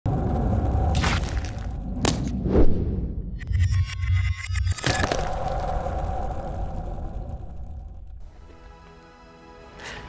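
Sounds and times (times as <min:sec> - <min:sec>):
deep low pulse: 0:01.7 - 0:08.8
rapid glitchy clicks: 0:03.4 - 0:05.3.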